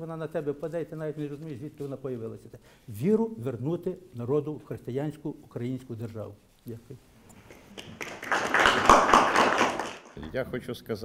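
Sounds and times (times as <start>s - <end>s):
group applause: 7.5s - 10.2s.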